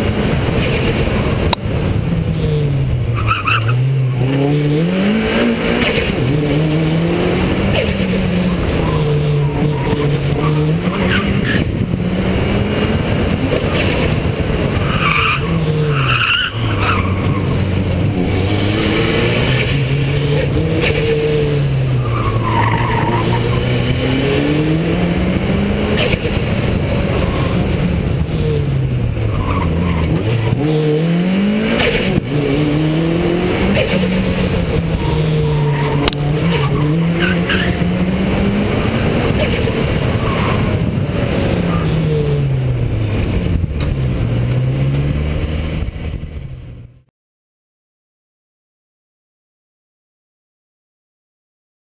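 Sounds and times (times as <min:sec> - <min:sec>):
car engine revving: 0:00.0 - 0:47.1.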